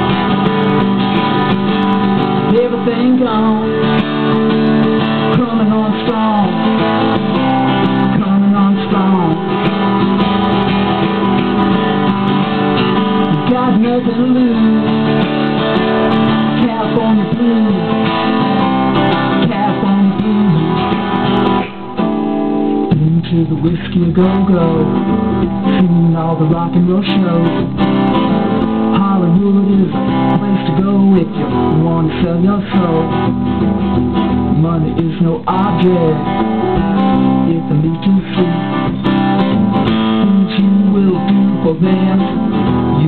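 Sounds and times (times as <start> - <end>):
acoustic blues guitar: 0.0 - 43.0.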